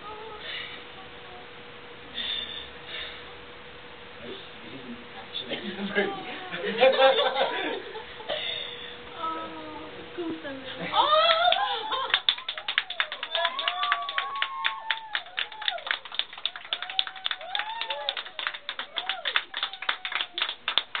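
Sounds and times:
excited voices: 10.8 - 20.8
woman squealing: 10.9 - 12.1
group clapping: 11.0 - 21.0.

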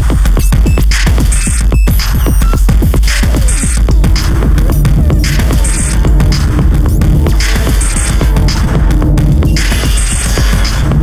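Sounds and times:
low synth bass drone: 1.9 - 11.0.

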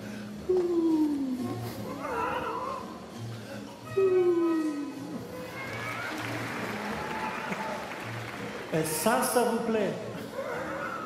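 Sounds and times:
audience noise: 5.1 - 11.0.

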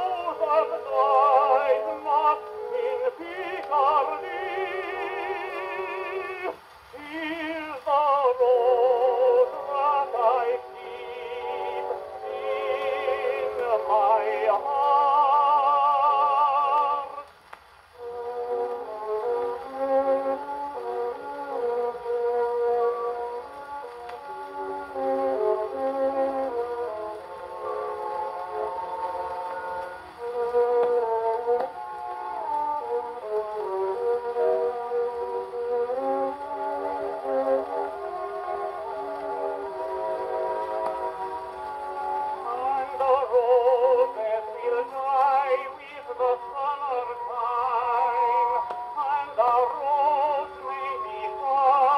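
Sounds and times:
orchestral accompaniment on gramophone: 0.0 - 51.9
tenor singing with vibrato: 0.0 - 51.9.

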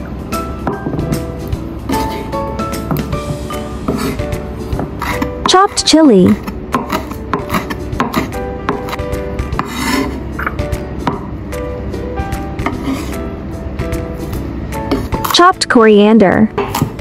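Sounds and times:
background music: 0.0 - 17.0
knife chopping on wooden board: 6.2 - 11.3.

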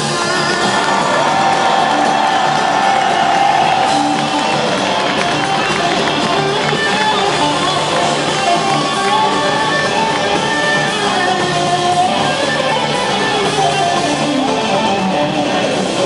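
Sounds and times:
crowd cheering: 0.0 - 16.0
electric guitar solo: 0.0 - 16.0.

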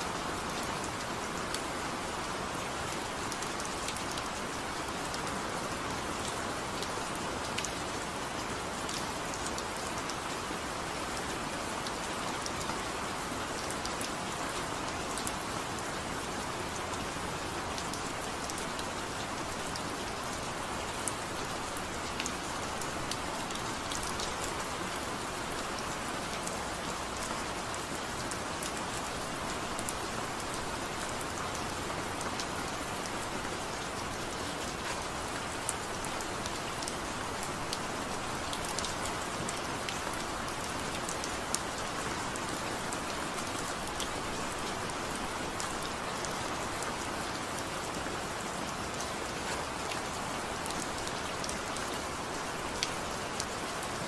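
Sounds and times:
steady rain falling: 0.0 - 54.0.

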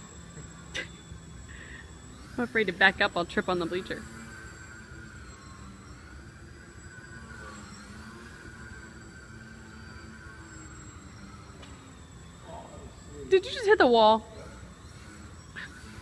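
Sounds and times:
electric motor and propeller whine: 0.0 - 16.0.

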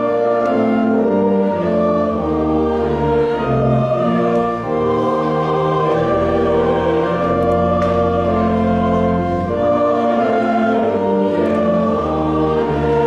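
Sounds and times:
mixed choir singing: 0.0 - 13.0.

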